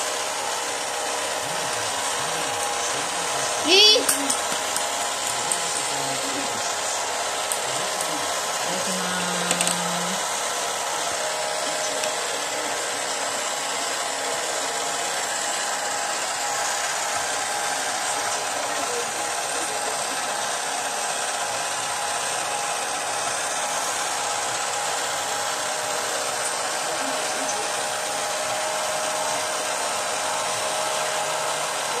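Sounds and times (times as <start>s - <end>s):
small electric motor whirring: 0.0s - 32.0s.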